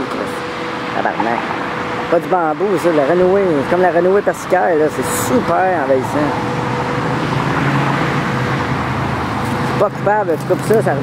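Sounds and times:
cars passing: 0.0s - 11.0s
low traffic hum: 0.0s - 11.0s.

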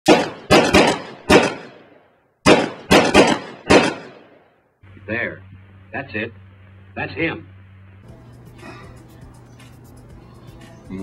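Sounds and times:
loud sharp impact hits: 0.1s - 1.9s, 2.5s - 4.4s.

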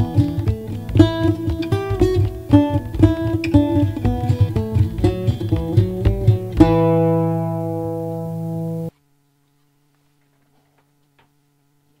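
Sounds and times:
faint steady hum: 0.0s - 12.0s.

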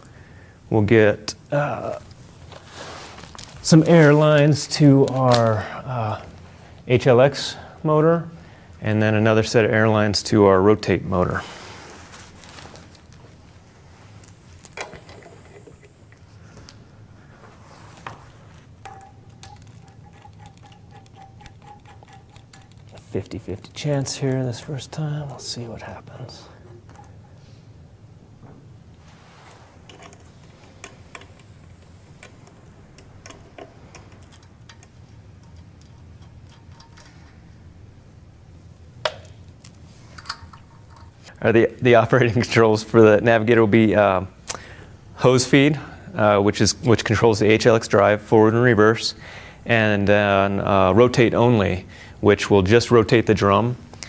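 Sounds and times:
air-line fittings clicking: 18.8s - 25.5s, 29.9s - 37.4s.

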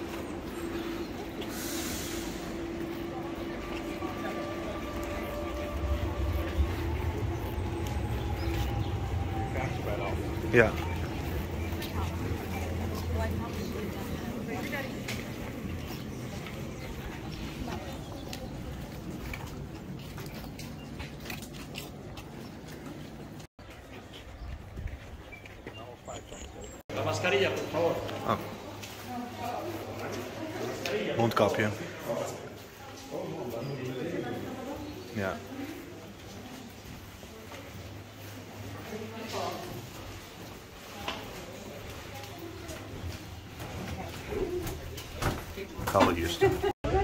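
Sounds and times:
deep rumble: 0.0s - 20.4s.

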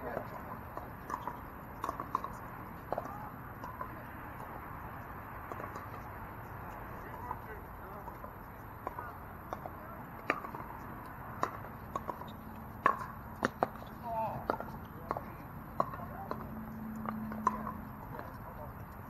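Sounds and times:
paddles hitting plastic ball: 8.1s - 17.8s.

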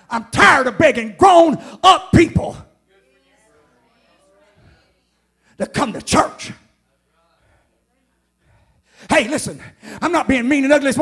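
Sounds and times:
faint background voice: 2.9s - 5.4s.

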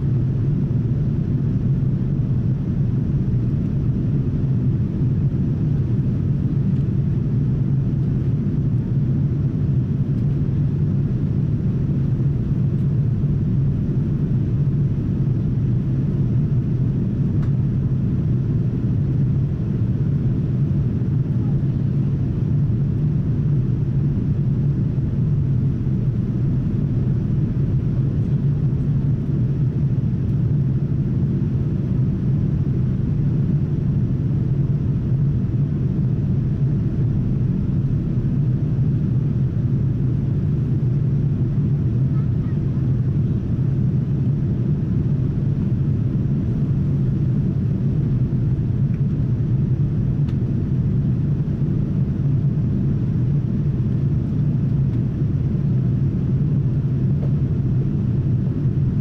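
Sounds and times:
airplane cabin engine drone: 0.0s - 59.0s.

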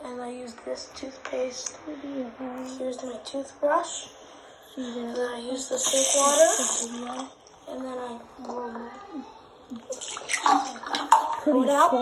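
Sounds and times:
water pouring and splashing: 9.9s - 11.4s.

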